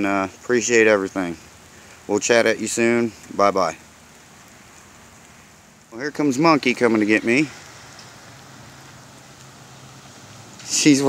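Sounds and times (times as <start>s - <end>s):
rain on wet pavement: 0.0s - 11.0s.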